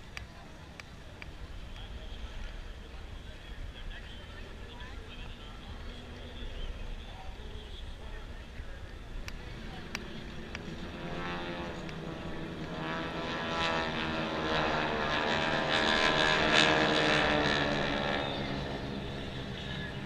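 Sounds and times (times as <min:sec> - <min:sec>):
jet fighters flying overhead: 0:00.0 - 0:20.0.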